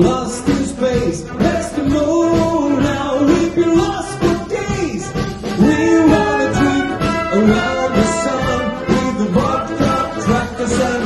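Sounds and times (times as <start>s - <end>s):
wind band playing: 1.3s - 11.0s.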